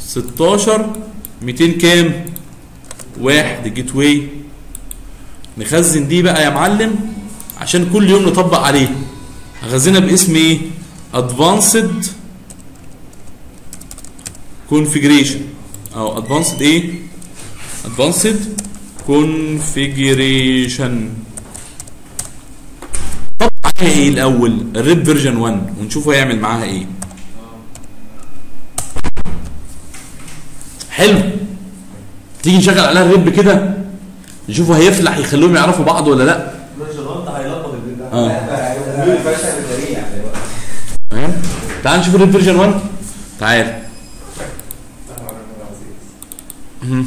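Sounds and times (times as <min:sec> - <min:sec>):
computer keyboard typing: 0:02.1 - 0:03.2, 0:12.4 - 0:14.4, 0:15.7 - 0:19.0, 0:19.6 - 0:22.4, 0:26.9 - 0:27.9, 0:46.2 - 0:46.6
computer mouse clicks: 0:02.2 - 0:03.1, 0:04.7 - 0:05.6, 0:44.5 - 0:45.4, 0:46.2 - 0:46.6.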